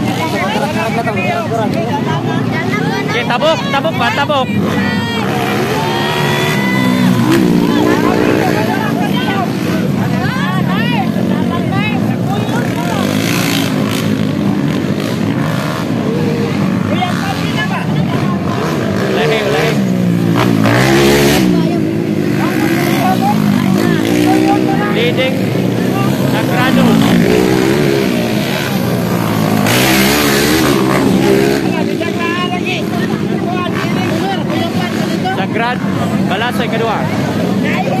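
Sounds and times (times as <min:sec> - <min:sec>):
dirt-bike engines revving: 0:00.0 - 0:38.0
voices: 0:00.0 - 0:38.0.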